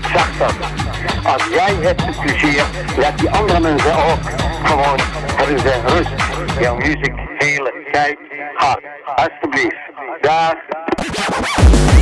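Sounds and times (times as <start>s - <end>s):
filtered spoken vocal sample: 0.0s - 11.3s.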